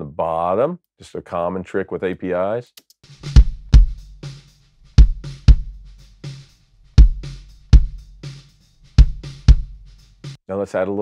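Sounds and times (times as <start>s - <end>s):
drum kit beat with loud kick: 3.0s - 10.4s.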